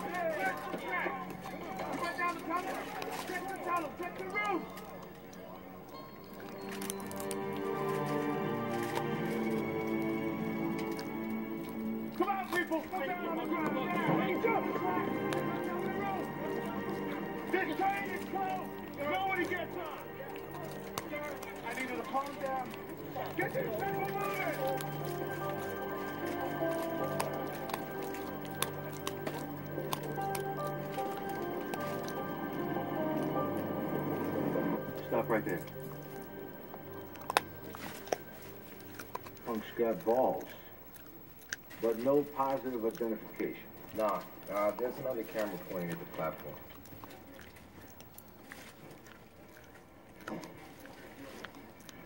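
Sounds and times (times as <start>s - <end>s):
film music from television: 0.0s - 47.0s
voices: 0.0s - 47.9s
dog gnawing a chew: 0.0s - 52.0s.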